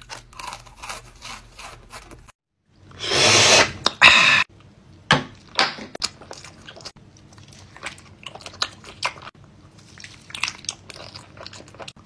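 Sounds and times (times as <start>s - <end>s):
chewing candy: 6.0s - 12.0s.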